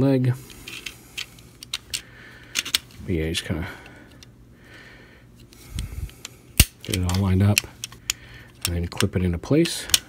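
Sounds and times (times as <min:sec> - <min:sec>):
plastic toy parts clicking: 0:00.7 - 0:02.8, 0:06.6 - 0:10.0.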